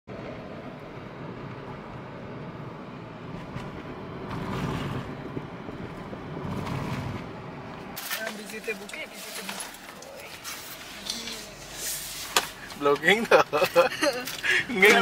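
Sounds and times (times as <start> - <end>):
road and engine noise in car: 0.1 - 15.0.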